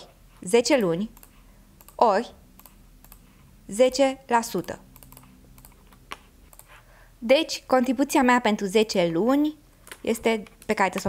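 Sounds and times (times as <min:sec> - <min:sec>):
voice: 0:00.4 - 0:01.2, 0:02.0 - 0:02.4, 0:03.7 - 0:04.8, 0:07.2 - 0:11.0.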